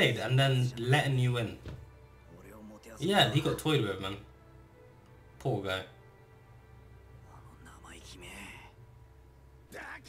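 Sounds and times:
faint dialogue from television: 0:00.0 - 0:06.2, 0:09.6 - 0:10.0.

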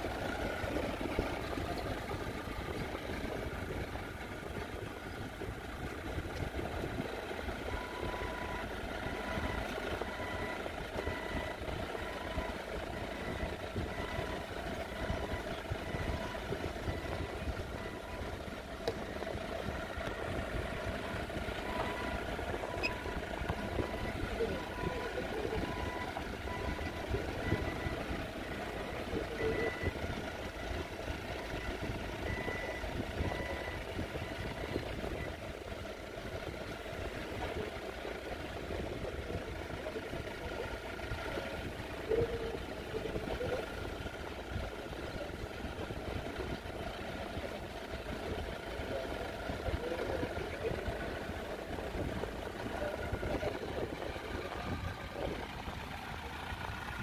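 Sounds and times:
forklift engines running: 0:00.0 - 0:57.0
forklift warning beeper: 0:06.6 - 0:35.4, 0:46.3 - 0:55.5.

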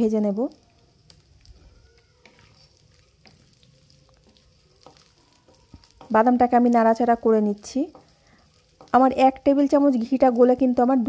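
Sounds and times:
nuts sizzling in oil: 0:00.0 - 0:11.0
wooden spatula tapping and scraping: 0:00.5 - 0:10.8.

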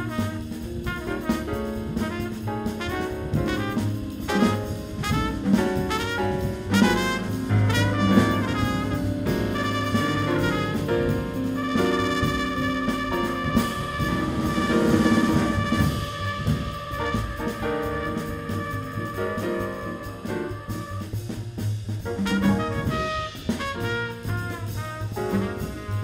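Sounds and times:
drums: 0:00.0 - 0:26.0
piano: 0:00.0 - 0:26.0
trumpet: 0:00.0 - 0:26.0
upright bass: 0:00.0 - 0:26.0.

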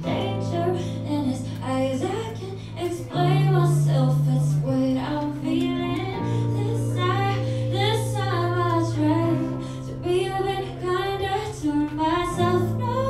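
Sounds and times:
woman singing: 0:00.0 - 0:13.0.

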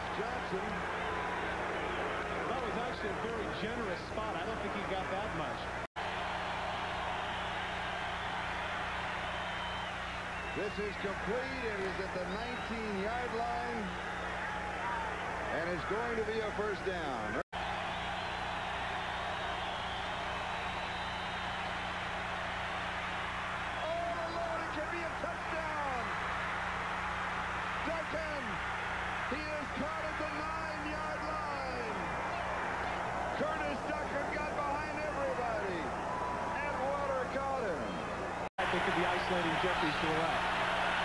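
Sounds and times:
stadium crowd noise: 0:00.0 - 0:41.0
crowd shouts and whoops: 0:00.1 - 0:03.1, 0:06.0 - 0:16.8, 0:17.6 - 0:41.0.

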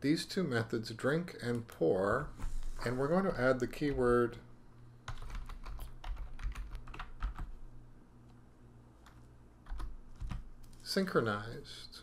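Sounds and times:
typing on computer keyboard: 0:05.1 - 0:07.6, 0:09.0 - 0:10.4.

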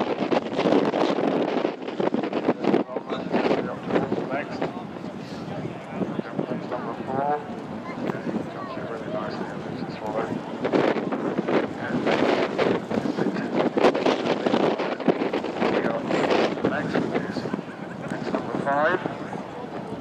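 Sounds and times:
spectators talking: 0:00.0 - 0:20.0
wind buffeting microphone: 0:00.0 - 0:20.0.

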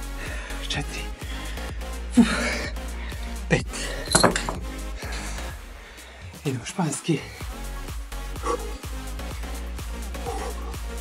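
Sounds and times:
background music: 0:00.0 - 0:11.0
metal clips clinking: 0:04.0 - 0:04.8.

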